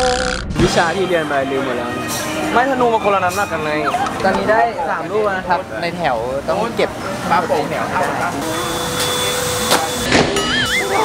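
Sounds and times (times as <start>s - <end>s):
steady two-tone hum: 0.0s - 11.0s.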